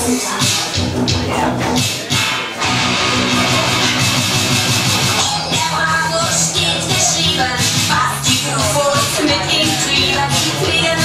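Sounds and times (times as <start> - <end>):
rock song over sound system: 0.0 - 11.0.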